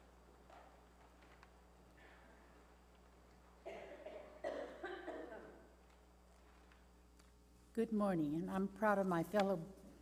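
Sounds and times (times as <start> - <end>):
person coughing: 3.6 - 5.7.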